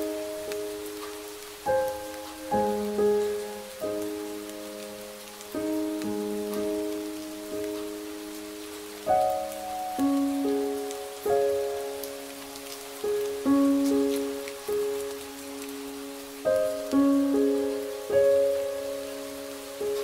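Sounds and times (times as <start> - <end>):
rain patter: 0.0 - 20.0.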